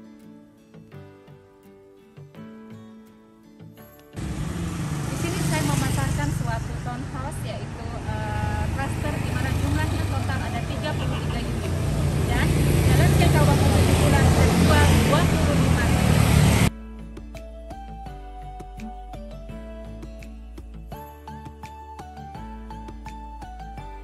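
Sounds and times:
cars passing: 4.2 - 16.7
motor scooters passing: 4.2 - 16.7.

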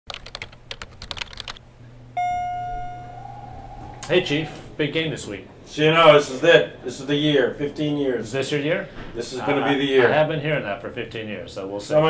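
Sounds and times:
bell-like ding: 2.2 - 4.8.

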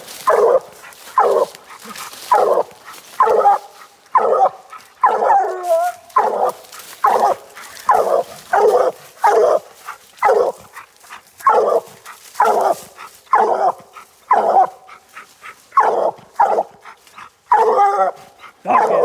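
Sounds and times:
hound barking: 0.0 - 19.0.

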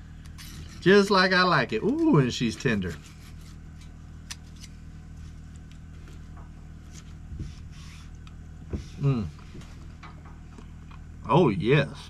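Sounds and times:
low hum: 0.0 - 12.0
low vocal murmur: 8.9 - 9.5.

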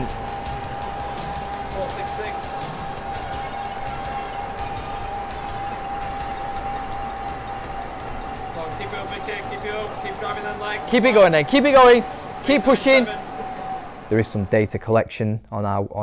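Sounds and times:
bike flywheel whirring: 0.0 - 14.8.

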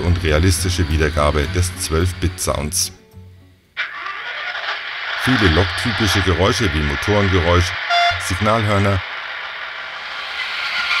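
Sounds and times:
diesel engine sound from loudspeaker: 0.0 - 3.0, 3.8 - 11.0
background music: 0.0 - 3.8.

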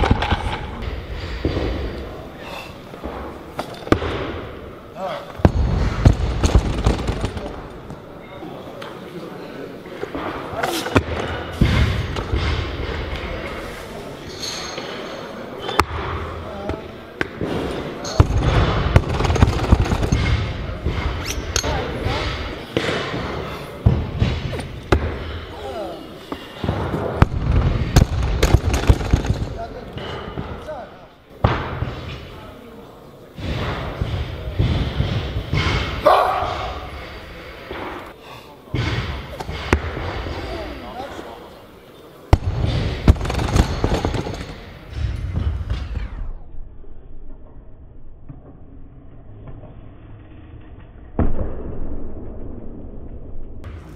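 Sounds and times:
voices talking in echoing hall: 0.0 - 46.2.

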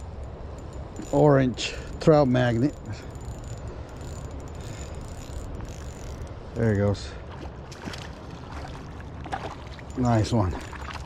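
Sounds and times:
fishing reel being cranked: 0.1 - 6.4.

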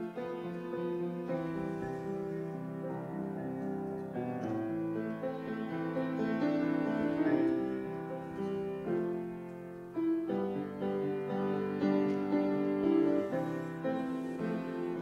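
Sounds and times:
piano slow chords: 0.0 - 15.0.

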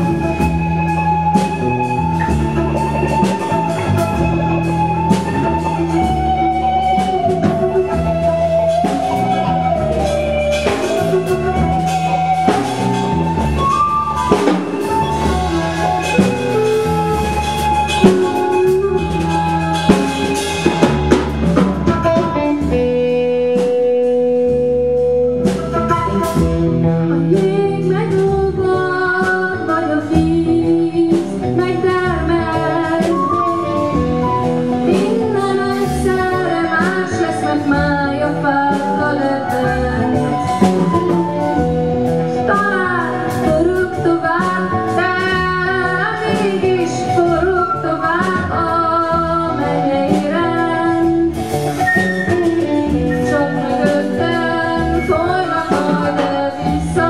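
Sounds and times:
woman singing: 0.0 - 26.4, 27.0 - 57.0
live band playing: 0.0 - 57.0.

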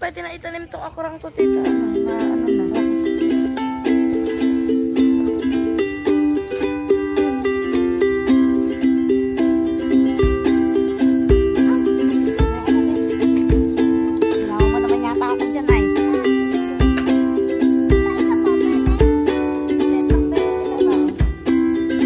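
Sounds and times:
plucked-string tune: 1.4 - 22.0.

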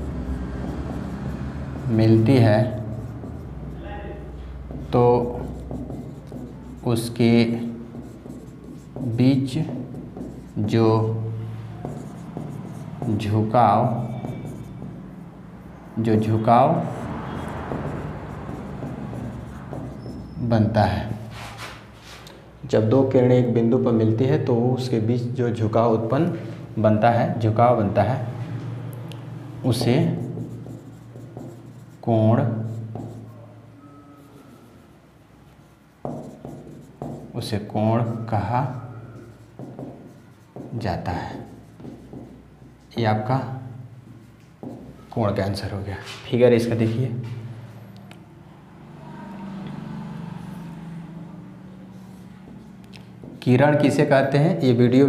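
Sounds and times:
marker scratching on whiteboard: 0.0 - 20.5, 21.1 - 22.3, 29.2 - 48.3, 51.7 - 54.4
marker tip tapping: 41.8 - 42.4.

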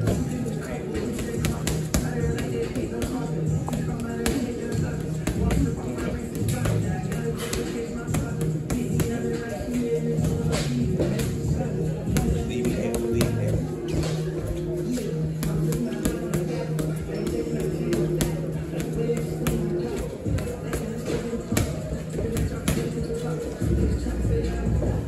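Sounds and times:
background music: 0.0 - 25.0.

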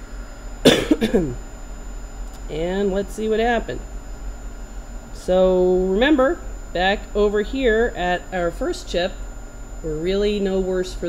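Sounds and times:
person coughing: 0.6 - 1.4.

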